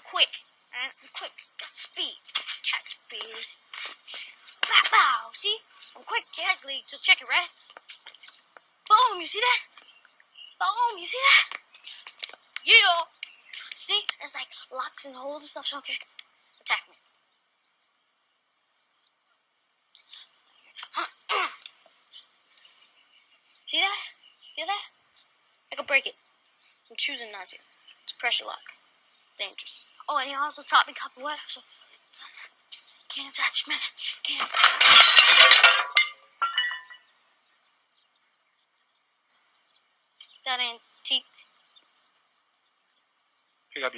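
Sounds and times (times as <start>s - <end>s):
shards clattering: 34.3s - 37.1s
ceramic pots smashing on stone: 34.4s - 37.1s.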